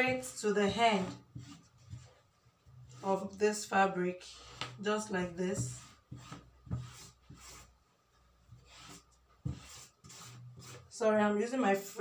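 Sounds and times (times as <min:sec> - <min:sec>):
marking tool scratching on fabric: 0:00.0 - 0:02.2, 0:05.5 - 0:07.7, 0:08.5 - 0:10.9.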